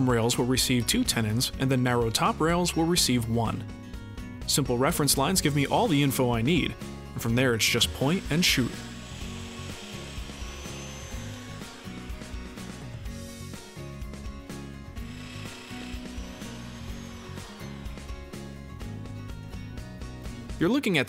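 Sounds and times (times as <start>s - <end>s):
background music: 0.0s - 21.0s
power joiner motor spinning: 7.2s - 20.4s.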